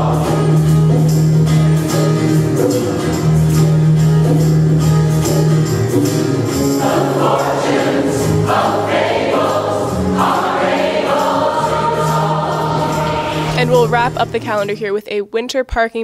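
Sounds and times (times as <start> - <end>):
mixed choir singing in harmony: 0.0 - 1.4, 6.6 - 13.8
backing band: 0.0 - 15.0.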